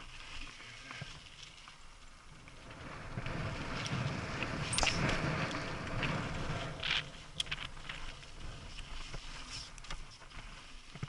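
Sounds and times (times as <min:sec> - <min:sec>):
bike clicks and rattles: 0:01.1 - 0:11.0
wind and tyre rush: 0:01.3 - 0:11.0.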